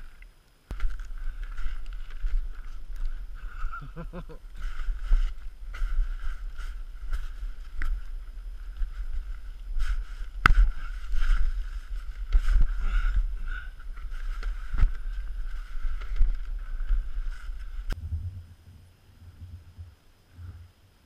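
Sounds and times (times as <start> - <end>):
snowshoe scraping and knocking: 0.7 - 18.0
heavy wind rumble: 0.7 - 20.7.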